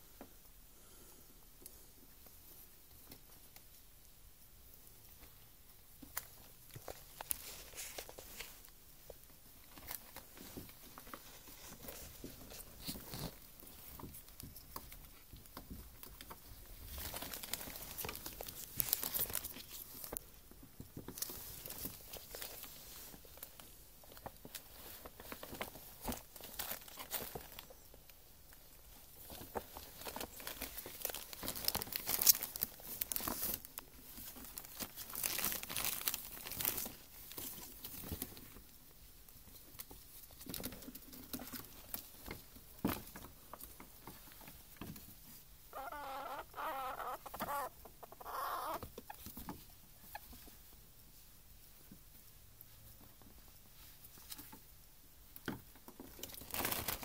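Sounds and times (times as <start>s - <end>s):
gift bag and plastic crinkling: 16.0s - 20.3s, 21.0s - 27.9s, 28.6s - 38.6s, 56.0s - 57.0s.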